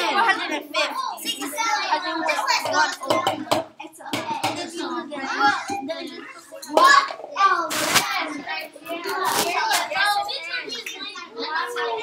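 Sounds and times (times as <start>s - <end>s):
children talking: 0.0s - 12.0s.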